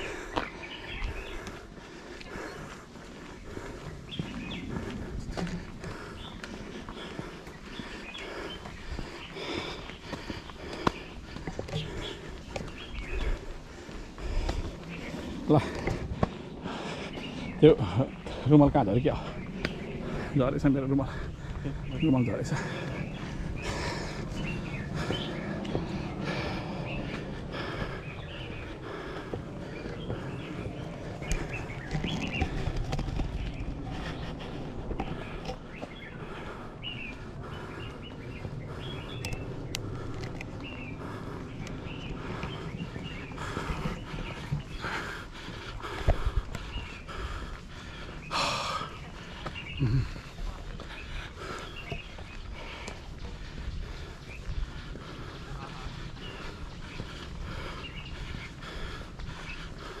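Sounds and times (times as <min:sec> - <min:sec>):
footsteps: 0:00.0 - 0:17.6
birds chirping: 0:00.0 - 1:00.0
wind rumbling on microphone: 0:00.0 - 1:00.0.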